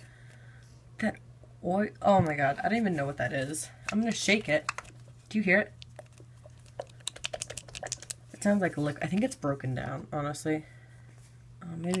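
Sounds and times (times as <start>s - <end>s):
plastic tube being shaken: 5.8s - 8.5s.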